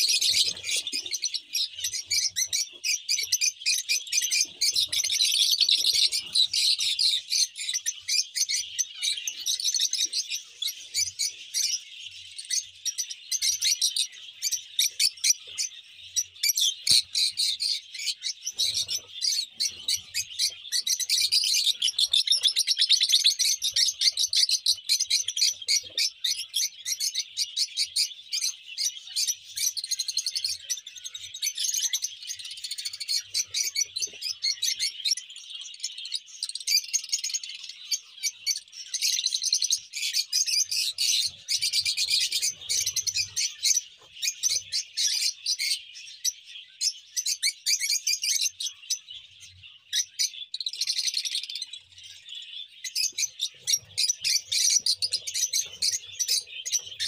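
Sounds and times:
lovebirds chirping: 0:00.0 - 0:57.0.

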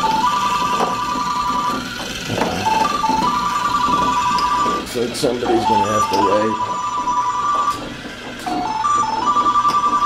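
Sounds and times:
electronic telephone ringing: 0:00.0 - 0:01.8, 0:02.6 - 0:04.8, 0:05.5 - 0:07.8, 0:08.4 - 0:10.0.

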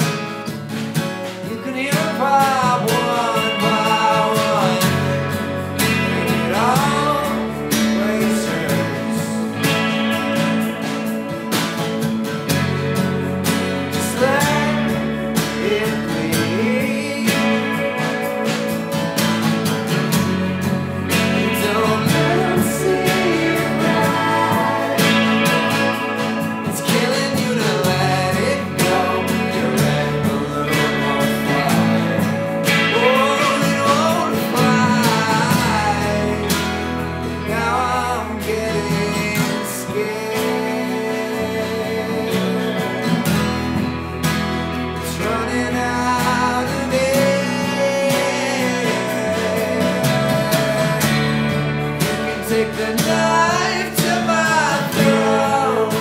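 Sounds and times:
rock band playing live: 0:00.0 - 0:56.0
person singing: 0:01.2 - 0:11.8, 0:12.5 - 0:44.0, 0:44.7 - 0:56.0.

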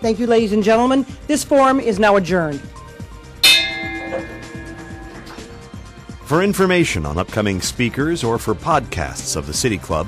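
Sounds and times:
small bell ringing: 0:03.4 - 0:05.9.

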